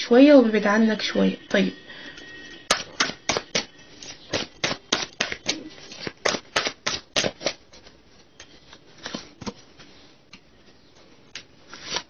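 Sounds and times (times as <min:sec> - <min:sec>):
cards clicking and rustling: 0:03.5 - 0:10.4.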